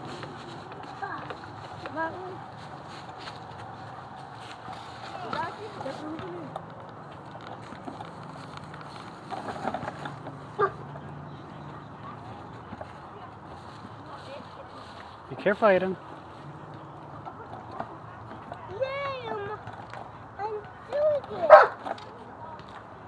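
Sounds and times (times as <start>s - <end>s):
children's voices calling: 0.0s - 6.7s, 9.8s - 14.9s, 16.4s - 22.9s
low outdoor background noise: 0.0s - 23.0s.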